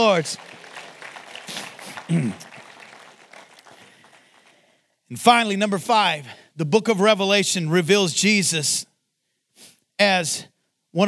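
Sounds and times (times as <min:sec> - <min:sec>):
faint scattered clapping: 0:00.0 - 0:04.8.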